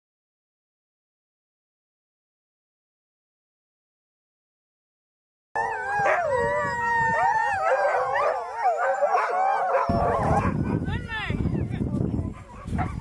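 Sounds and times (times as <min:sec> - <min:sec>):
huskies howling: 0:05.6 - 0:11.0.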